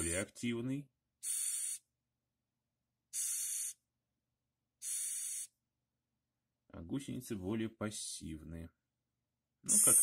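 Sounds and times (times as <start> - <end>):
cockroach hissing: 1.2 - 1.8, 3.2 - 3.8, 4.8 - 5.5.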